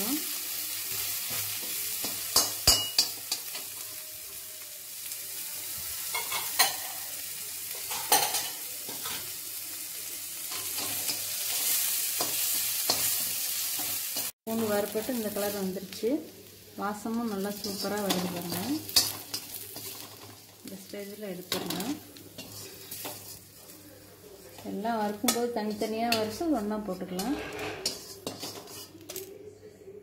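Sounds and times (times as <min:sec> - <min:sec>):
garlic sizzling in a pan: 0:00.0 - 0:29.3
metal skimmer scraping a pan: 0:26.9 - 0:29.0.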